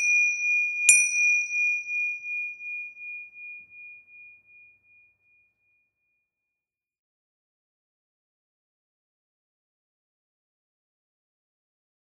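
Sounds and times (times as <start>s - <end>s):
meditation bell ringing: 0.0s - 5.3s.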